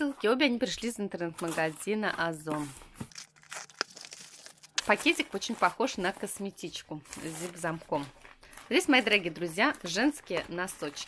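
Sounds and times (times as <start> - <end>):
rustling tape and packaging: 1.3 - 11.0.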